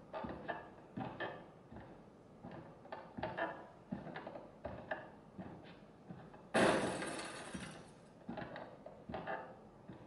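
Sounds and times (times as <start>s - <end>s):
glass shattering: 6.6s - 7.9s.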